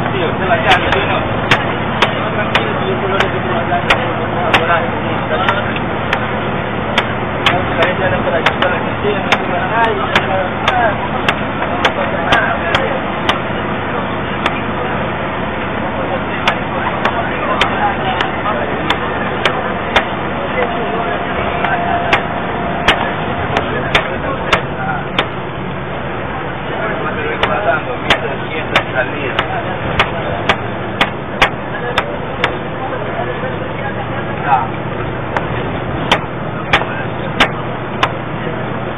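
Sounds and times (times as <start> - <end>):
bus engine and road rumble: 0.0 - 38.9
muffled voices: 0.0 - 38.9.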